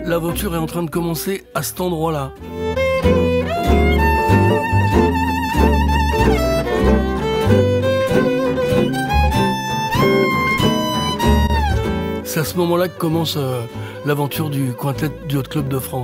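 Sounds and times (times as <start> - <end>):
double bass: 0.0 - 16.0
guitar rhythm: 0.0 - 16.0
violin melody with vibrato: 0.0 - 16.0.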